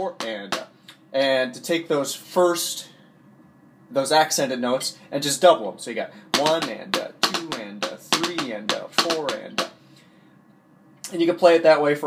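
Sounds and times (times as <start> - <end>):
drumsticks on practice pad: 0.0 - 1.0, 6.3 - 9.8.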